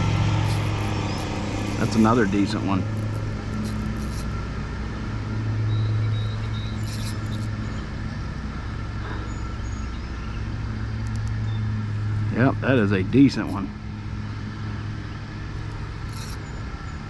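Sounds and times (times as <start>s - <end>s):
lawn mower engine running: 0.0s - 5.6s.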